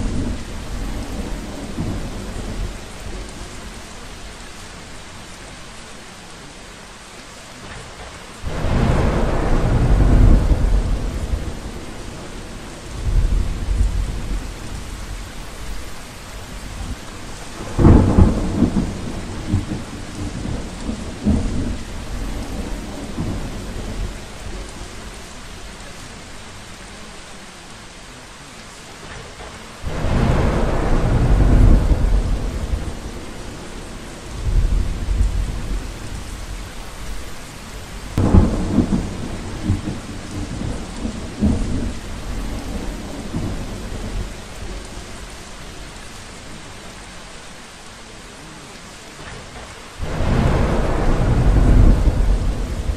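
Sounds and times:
loud rumbling thunder: 0.0s - 3.8s, 8.4s - 25.0s, 29.8s - 45.4s, 50.0s - 52.9s
rain hissing: 0.0s - 52.9s.

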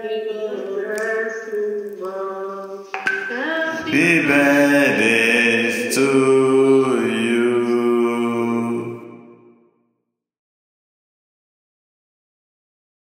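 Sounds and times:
slow chant-like singing: 0.4s - 9.5s.

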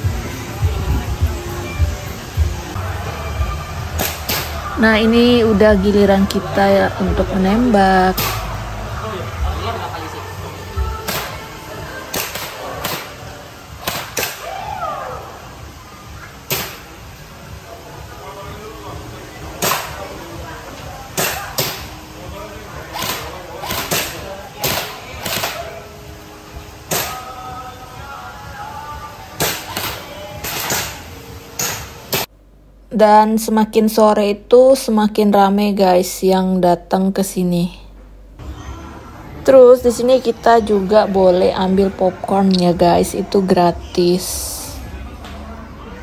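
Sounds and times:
airsoft rifle shots: 22.9s - 25.8s.

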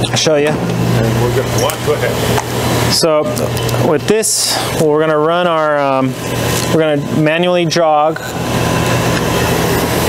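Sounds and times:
laser cutting machine humming: 0.0s - 10.0s.

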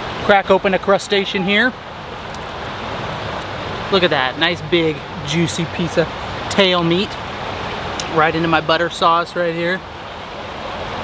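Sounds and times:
river water flowing: 0.0s - 11.0s
road traffic on bridge: 0.0s - 11.0s.

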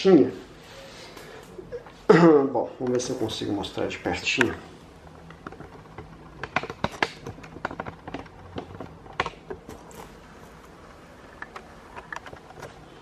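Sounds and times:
handling clicks and taps: 5.2s - 10.1s.

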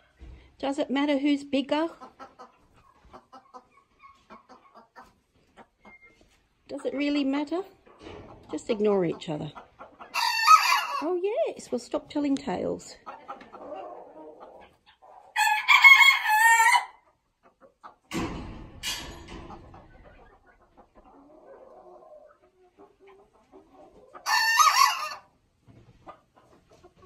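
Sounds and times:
roosters crowing: 10.1s - 11.0s, 15.4s - 17.0s, 24.2s - 25.2s.

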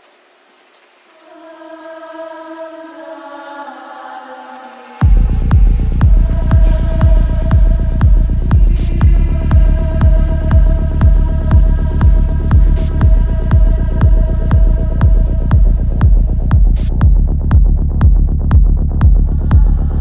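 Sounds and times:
kick drum and bass beat: 5.0s - 20.0s.

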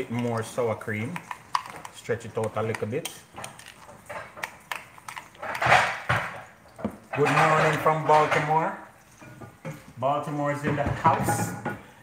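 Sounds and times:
spoon stirring thick sauce: 0.0s - 10.0s.

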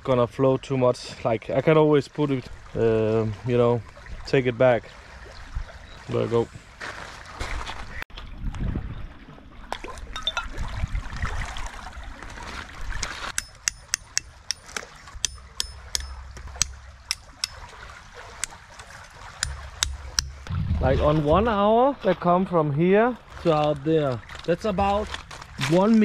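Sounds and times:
hatchet chopping wood: 13.4s - 17.6s, 19.4s - 20.5s.

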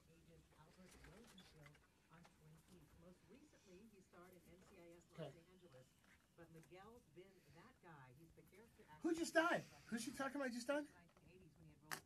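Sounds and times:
faint indistinct voices talking: 0.0s - 12.0s.

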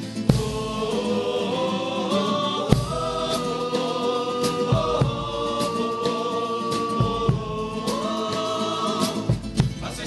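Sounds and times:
guitars strumming: 0.0s - 10.0s
men's choir singing in harmony: 0.2s - 10.0s
drum beating time: 0.3s - 10.0s.

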